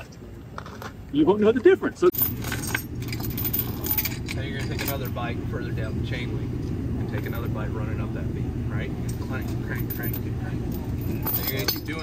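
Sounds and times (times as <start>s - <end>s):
steady low hum: 1.8s - 12.0s
metal chain clinking: 2.1s - 5.2s, 9.3s - 12.0s.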